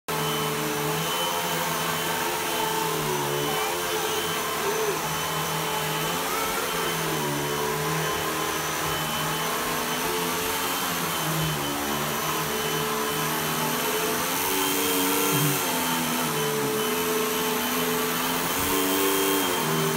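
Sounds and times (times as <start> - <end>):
vacuum cleaner on carpet: 0.1 - 19.9.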